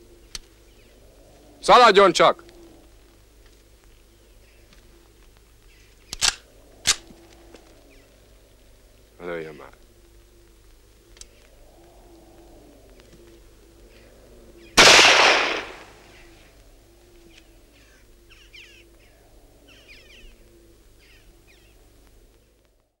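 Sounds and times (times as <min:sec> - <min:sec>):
rifle shot with echo: 0:14.8 - 0:16.2.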